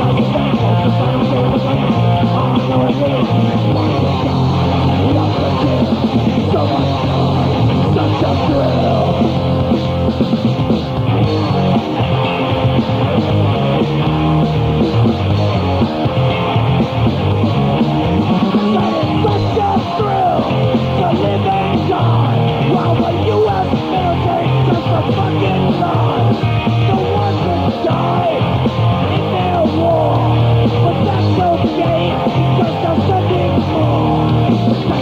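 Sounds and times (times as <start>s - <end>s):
bass: 0.0s - 35.0s
distorted electric guitar: 0.0s - 35.0s
drums: 0.0s - 35.0s.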